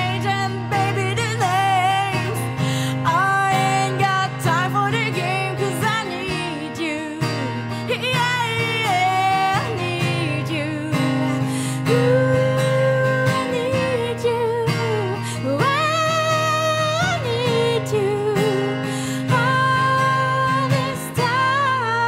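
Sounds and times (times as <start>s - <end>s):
strummed acoustic guitar: 0.0s - 22.0s
woman singing: 0.0s - 22.0s.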